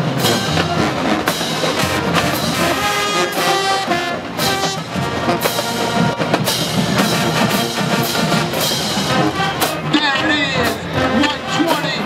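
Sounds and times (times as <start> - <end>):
marching band playing: 0.0 - 12.0
snare and bass drums: 0.0 - 12.0.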